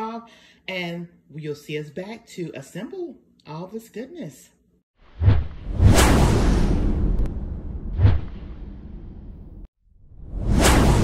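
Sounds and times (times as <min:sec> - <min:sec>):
whooshes with deep booms: 0:05.0 - 0:11.0
low rumble: 0:05.2 - 0:11.0.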